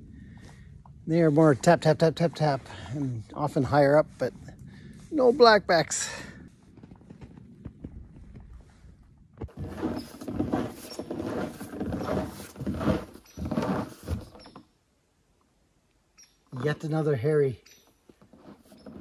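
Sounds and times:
boot footsteps crunching snow: 9.4s - 14.4s.

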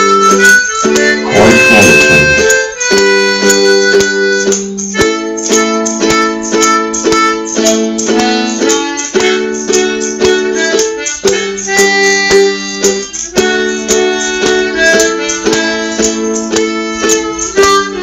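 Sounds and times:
harmonica playing: 0.0s - 18.0s
ukulele strumming: 0.0s - 18.0s
tambourine jingling: 0.6s - 18.0s.

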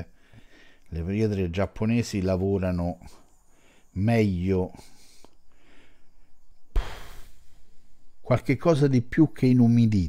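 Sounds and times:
brief louder noise: 6.7s - 7.5s.

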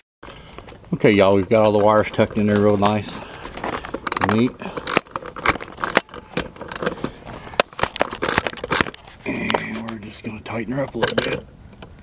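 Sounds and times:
metal clicks and scrapes: 0.2s - 10.0s, 10.8s - 11.4s.

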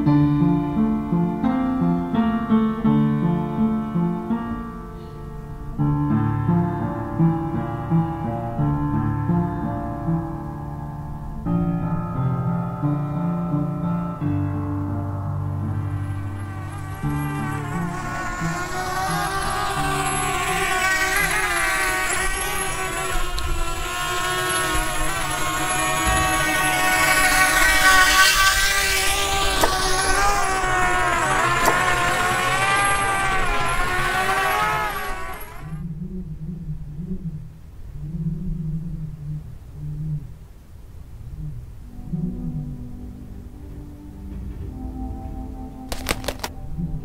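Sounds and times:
propeller aeroplane droning: 13.8s - 35.9s
faint low tones: 35.8s - 45.9s.

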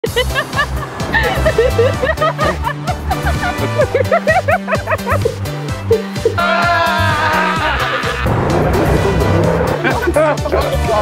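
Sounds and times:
background music with beat: 0.0s - 11.0s
high-pitched laughter: 1.2s - 8.3s.

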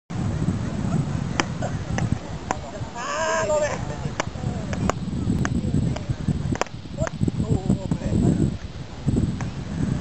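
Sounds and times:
wind on microphone: 0.1s - 10.0s.

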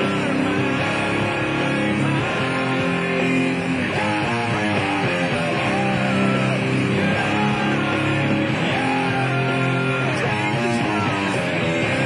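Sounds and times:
backing track: 0.0s - 12.0s
electric guitar playing rock: 0.0s - 12.0s.

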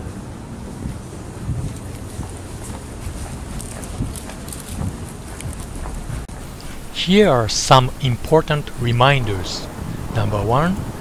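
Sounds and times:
footsteps on tiled floor: 0.8s - 6.8s.

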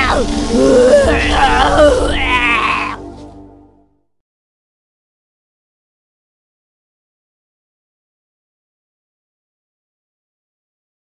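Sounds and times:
quavering wailing voice: 0.0s - 3.0s
background music: 0.0s - 4.2s.

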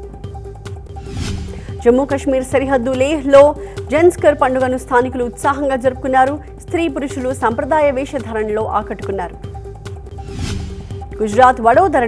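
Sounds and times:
news background music: 0.0s - 12.0s
newsreader speaking: 1.8s - 9.4s, 11.2s - 12.0s.

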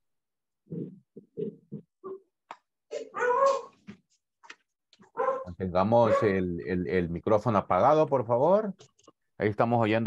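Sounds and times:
child's high-pitched cry: 3.0s - 3.7s.

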